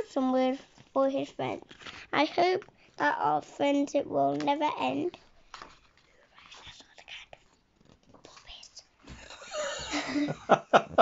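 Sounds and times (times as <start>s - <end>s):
paper page rustling: 0.6s - 2.6s, 5.1s - 8.6s
soft whispering: 5.9s - 9.0s.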